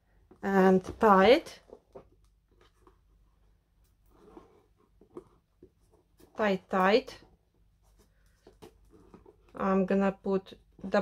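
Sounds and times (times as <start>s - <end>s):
string rustling on cardboard box: 1.0s - 9.6s.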